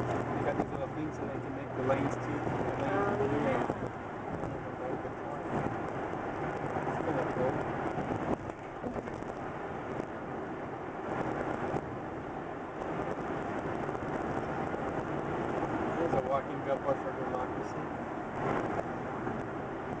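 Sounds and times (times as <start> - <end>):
road and tyre noise in car: 0.0 - 20.0.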